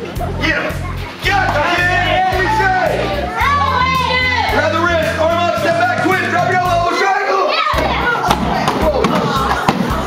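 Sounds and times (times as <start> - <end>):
young children's voices: 7.3 - 8.6
music with bass beat: 7.8 - 10.0.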